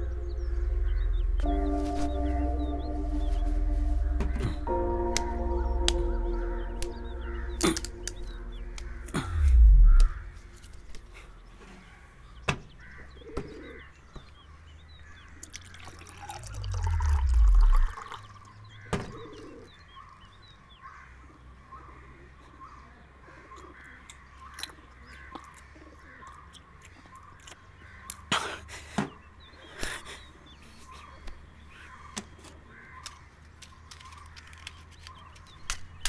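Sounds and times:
loud low swell: 0:00.0 - 0:11.5, 0:16.2 - 0:18.1
small birds chirping: 0:00.0 - 0:36.0.

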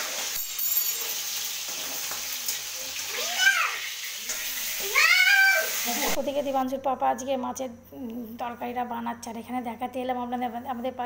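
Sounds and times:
food frying in a wok: 0:00.0 - 0:06.4.

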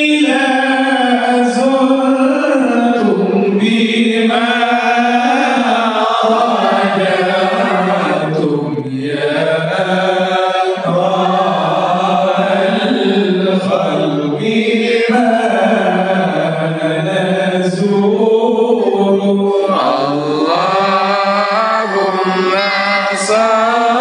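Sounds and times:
man leading chant on microphone: 0:00.0 - 0:24.0
group of voices chanting: 0:03.0 - 0:16.2, 0:17.9 - 0:24.0.

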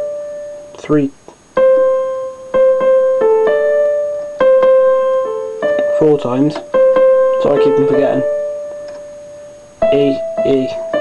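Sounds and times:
electronic keyboard melody: 0:00.0 - 0:11.0.

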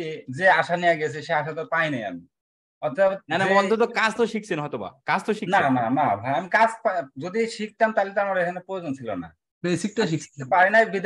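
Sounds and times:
person talking: 0:02.8 - 0:11.0.

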